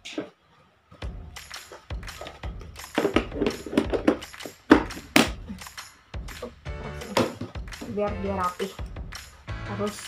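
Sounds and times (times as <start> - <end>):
faint background music: 0.0 - 10.0
plastic containers knocking together: 1.7 - 5.4, 7.0 - 7.9.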